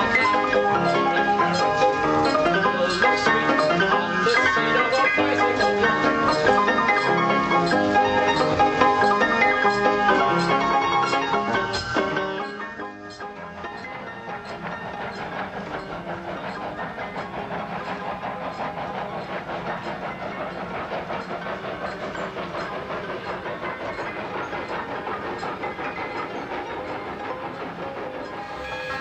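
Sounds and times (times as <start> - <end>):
steam hissing: 0.0 - 29.0
steam locomotive chuffing: 0.0 - 29.0.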